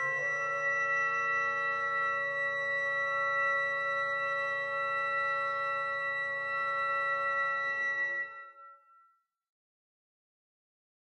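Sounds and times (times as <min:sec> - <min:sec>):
woodwind quintet sustained chord: 0:00.0 - 0:08.4.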